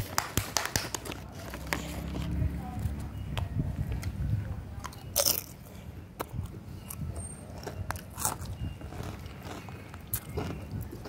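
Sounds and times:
child chewing rice: 0.8s - 3.0s, 4.8s - 11.0s.

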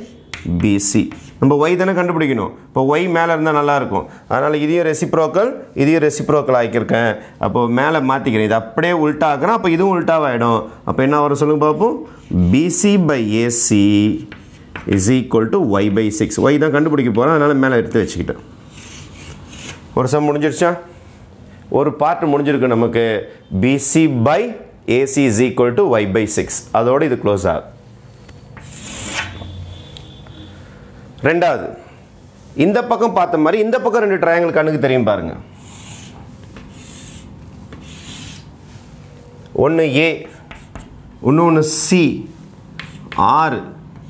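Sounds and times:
chalk scraping on a blackboard: 0.1s - 1.4s, 14.2s - 14.8s, 18.7s - 19.9s, 28.6s - 29.6s, 35.6s - 38.9s, 40.2s - 41.0s, 42.8s - 43.2s.

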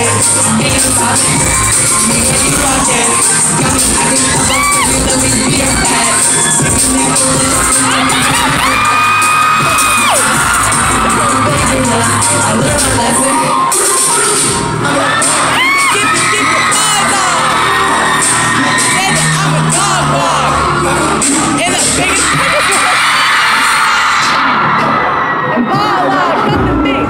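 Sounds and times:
crowd screaming and cheering: 0.0s - 27.0s
live pop music: 0.0s - 27.0s.

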